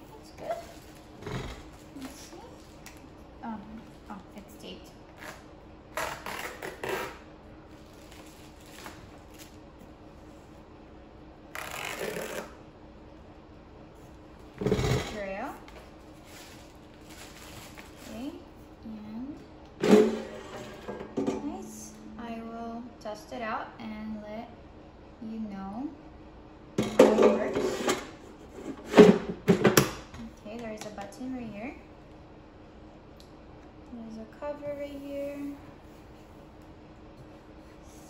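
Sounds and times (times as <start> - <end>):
crinkling plastic wrapping: 7.7 - 9.6, 16.1 - 18.4.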